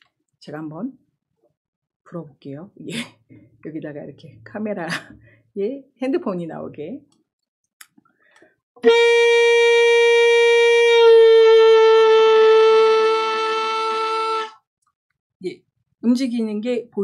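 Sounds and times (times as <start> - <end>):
alto saxophone note bending: 8.8 - 14.5.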